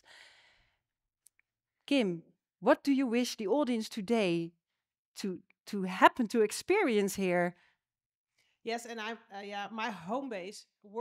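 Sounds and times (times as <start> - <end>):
breath into microphone: 0.0 - 0.8
woman speaking: 1.9 - 4.5, 5.2 - 7.5.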